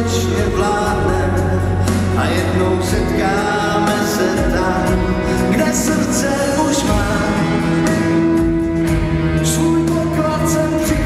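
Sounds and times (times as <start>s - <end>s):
man singing a slow ballad: 0.0s - 11.0s.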